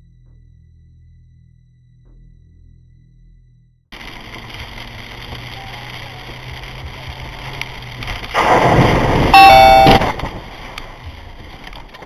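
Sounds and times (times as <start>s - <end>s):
car interior road noise: 4.0s - 12.0s
car horn blast: 9.3s - 10.2s.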